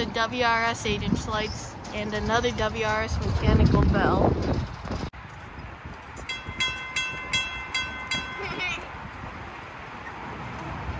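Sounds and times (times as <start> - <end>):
railroad crossing bell ringing: 6.1 - 9.6.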